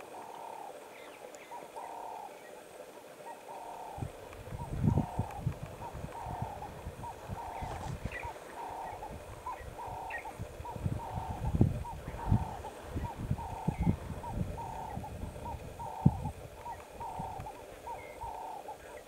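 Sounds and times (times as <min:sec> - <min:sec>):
dove cooing: 0:00.0 - 0:19.0.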